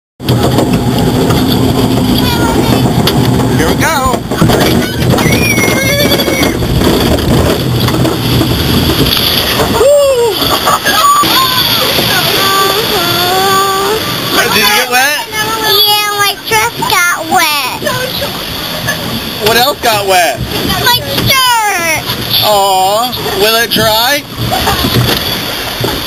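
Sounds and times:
water rushing and splashing: 0.2 - 26.0
voices calling out: 3.6 - 6.8, 9.4 - 19.8.

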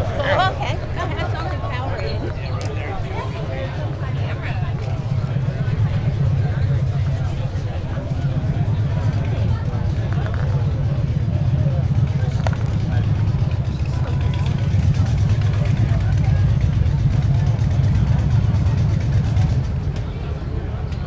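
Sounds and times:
chatter of voices: 0.0 - 21.0
motorcycle engine rumbling: 0.0 - 21.0.

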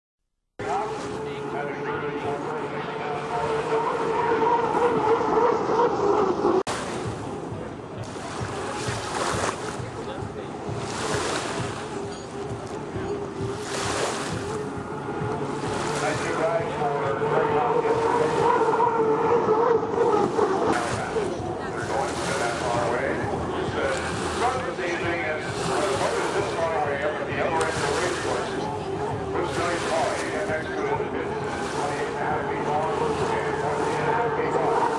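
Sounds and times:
hydroplane turbine whine: 0.6 - 34.9
wind buffeting microphone: 3.4 - 34.9.

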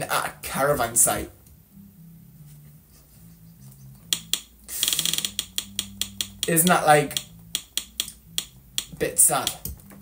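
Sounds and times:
ratcheting clicks: 4.1 - 9.6.

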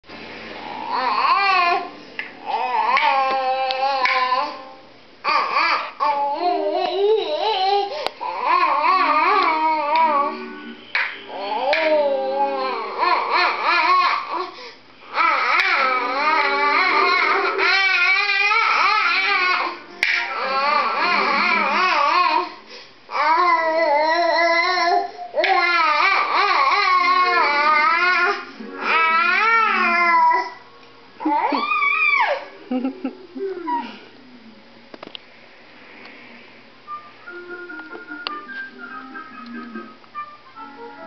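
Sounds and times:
toddler babbling: 11.3 - 14.4, 15.2 - 22.5
baby vocalizing sing-song: 15.1 - 22.5.

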